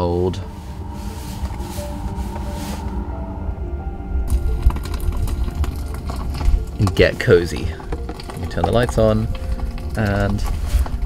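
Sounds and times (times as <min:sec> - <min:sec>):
log fire crackling: 0:00.0 - 0:03.2, 0:04.0 - 0:11.0.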